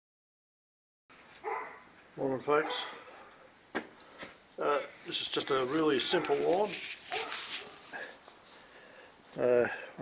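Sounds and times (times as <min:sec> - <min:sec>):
faint background noise: 0:01.1 - 0:10.0.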